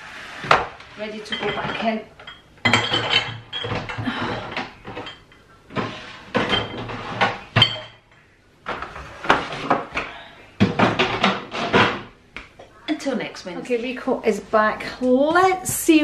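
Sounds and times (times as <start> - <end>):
jars and bottles clinking: 1.2 - 8.1.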